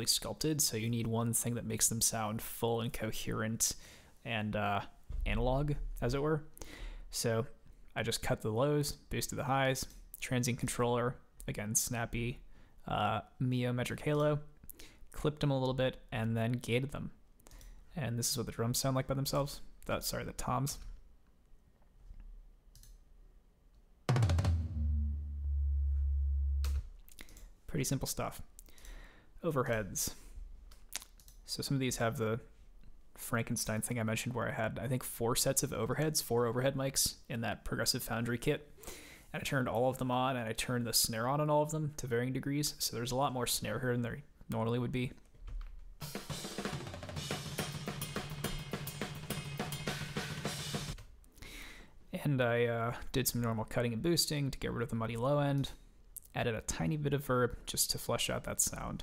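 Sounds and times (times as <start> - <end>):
tom drum hits: 24.1 - 26.9, 46.0 - 51.0
low sustained boom: 24.6 - 26.8.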